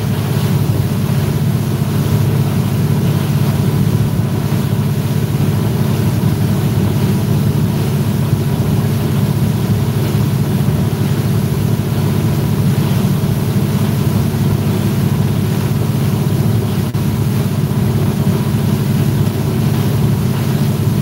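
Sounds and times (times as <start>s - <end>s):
outboard engine drone: 0.0s - 21.0s
wind: 0.0s - 21.0s.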